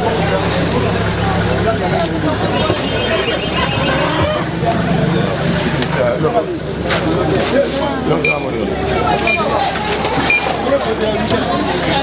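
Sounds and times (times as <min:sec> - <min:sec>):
vehicle engine running: 0:00.0 - 0:08.0
people talking: 0:00.0 - 0:12.0.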